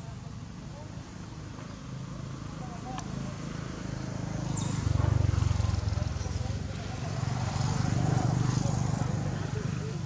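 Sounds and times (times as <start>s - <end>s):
faint human voices: 0.0s - 10.0s.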